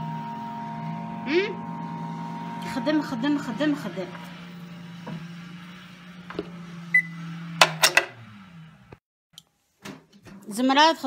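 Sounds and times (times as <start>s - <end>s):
treadmill motor hum: 0.0s - 9.0s.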